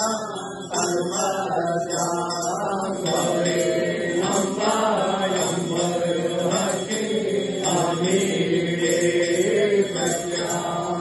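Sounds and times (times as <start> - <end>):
person chanting a hymn: 0.0 - 11.0.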